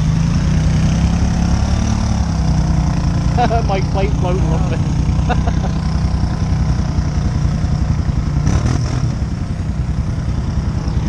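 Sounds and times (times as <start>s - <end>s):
engine rumbling at low revs: 0.0s - 11.0s.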